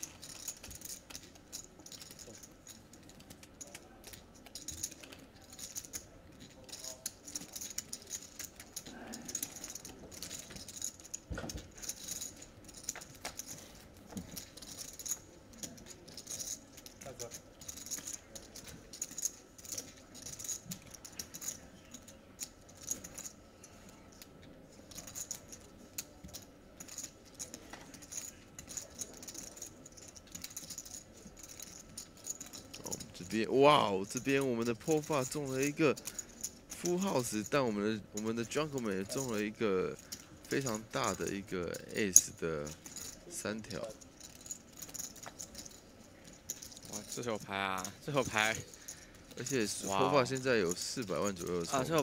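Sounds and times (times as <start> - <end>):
poker chips clicking: 0.0 - 52.0.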